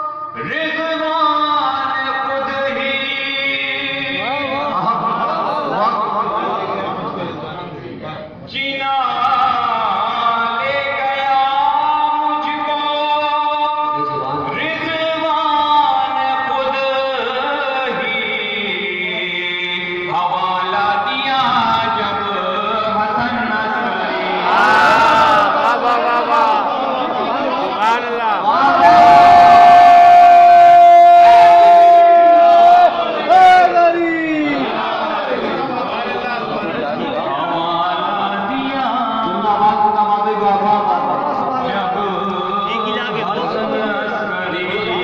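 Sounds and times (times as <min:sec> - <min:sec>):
man chanting into a microphone: 0:00.0 - 0:07.2, 0:08.4 - 0:34.7, 0:36.6 - 0:45.0.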